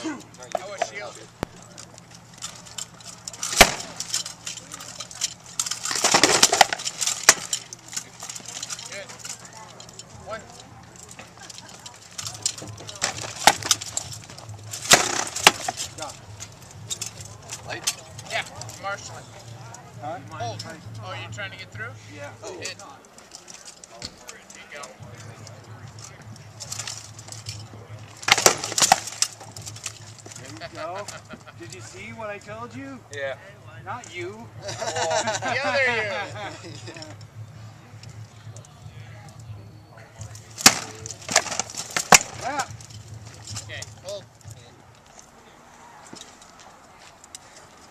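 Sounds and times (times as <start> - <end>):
faint voices: 0.0 - 47.9.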